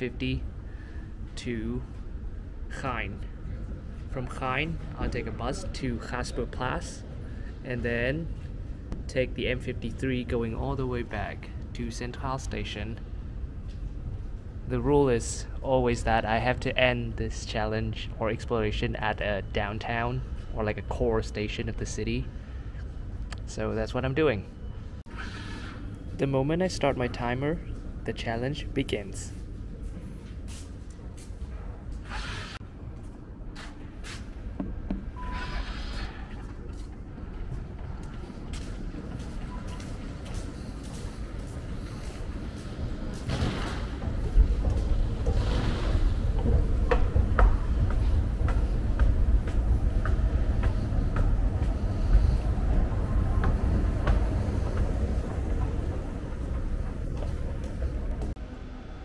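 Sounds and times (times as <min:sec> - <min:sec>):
steady low rumble: 0:00.0 - 0:25.1, 0:36.0 - 0:59.0
faint background noise: 0:00.0 - 0:59.0.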